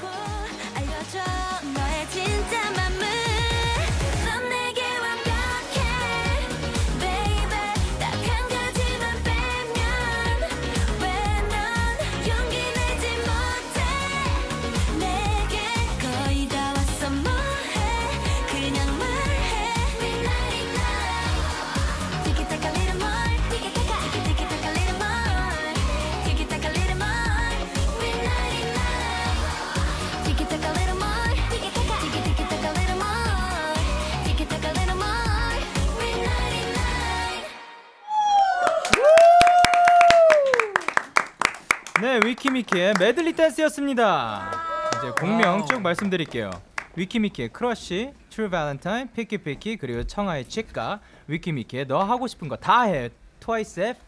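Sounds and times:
dance track with heavy beat: 0.0 - 4.4, 5.3 - 37.3
woman singing: 0.0 - 37.9
high-pitched cheer: 36.8 - 41.4, 44.3 - 46.1
people clapping: 38.4 - 43.4, 44.3 - 47.0.

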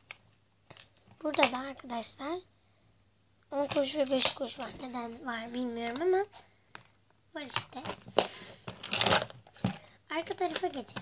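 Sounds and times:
rustling and scraping: 3.6 - 11.0.

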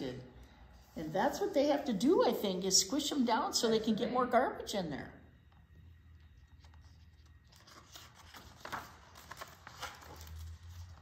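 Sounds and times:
paper rustling and crinkling: 6.5 - 11.0.

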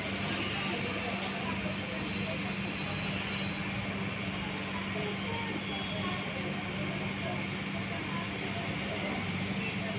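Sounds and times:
faint indistinct voices: 0.0 - 9.9.

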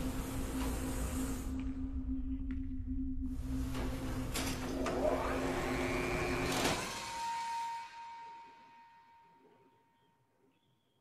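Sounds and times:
loud mechanical hum: 3.4 - 7.4.

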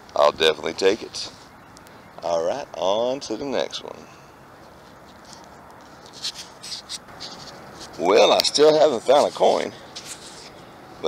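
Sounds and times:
gloved hands rustling: 4.6 - 10.7.

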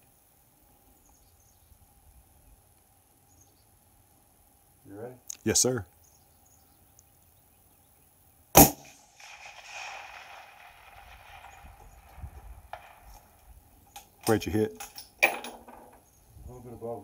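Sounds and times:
rifle shot with echo: 8.6 - 13.4.

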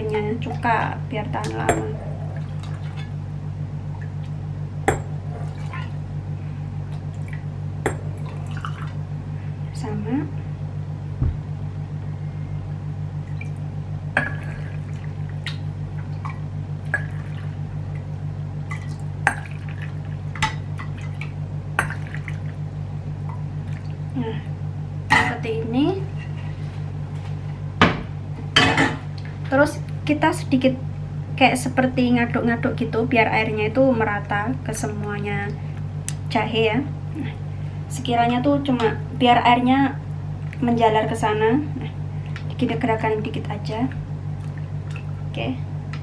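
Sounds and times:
steady low hum: 0.0 - 46.0
liquid pouring: 8.2 - 9.0.

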